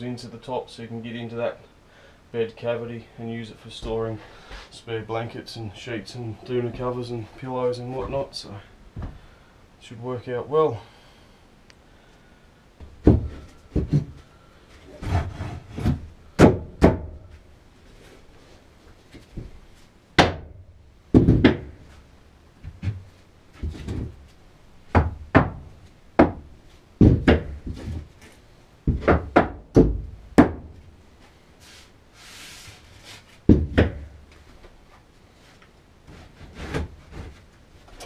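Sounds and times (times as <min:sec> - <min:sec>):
wooden knocks and thuds: 0:09.0 - 0:09.2, 0:12.8 - 0:14.2, 0:15.0 - 0:17.3, 0:20.2 - 0:22.0, 0:22.6 - 0:24.3, 0:24.9 - 0:28.2, 0:28.8 - 0:30.8, 0:33.4 - 0:34.2
knocks on wooden bed frame: 0:21.1 - 0:21.7, 0:26.2 - 0:28.0.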